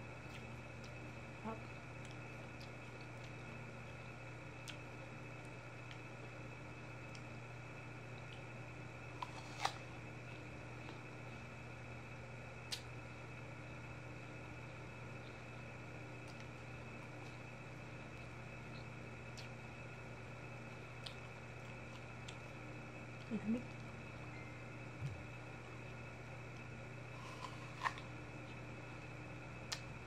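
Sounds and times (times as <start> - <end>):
mechanical hum: 0.0 - 30.0.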